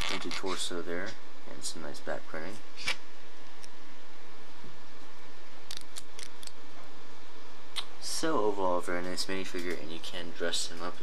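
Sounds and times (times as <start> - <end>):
background hiss: 0.2 - 11.0.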